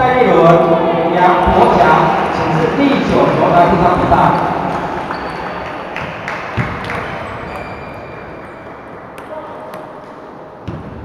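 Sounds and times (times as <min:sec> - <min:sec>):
murmur of voices: 0:00.0 - 0:10.7.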